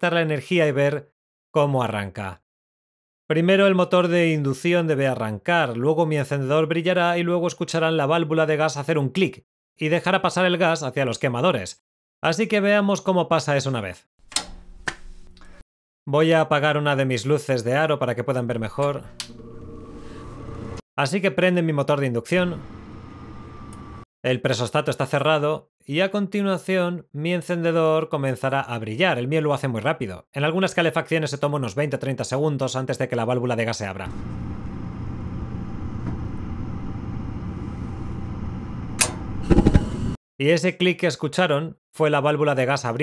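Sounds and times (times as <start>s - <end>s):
click: 14.3s - 15.5s, 18.8s - 19.4s, 39.0s - 39.2s
furnace motor humming: 18.8s - 20.8s, 22.4s - 24.0s, 34.1s - 40.2s.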